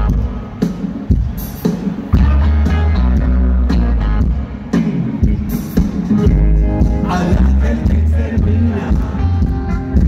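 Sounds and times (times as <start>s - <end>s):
electric guitars: 0.0s - 10.0s.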